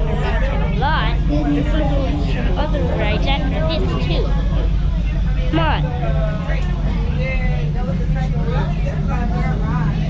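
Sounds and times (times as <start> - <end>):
low rumble: 0.0 - 10.0
people chattering: 0.0 - 10.0.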